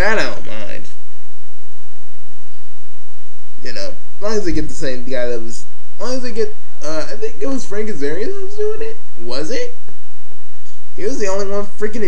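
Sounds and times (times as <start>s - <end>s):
low hum: 0.0s - 12.0s
steady hiss: 3.2s - 12.0s.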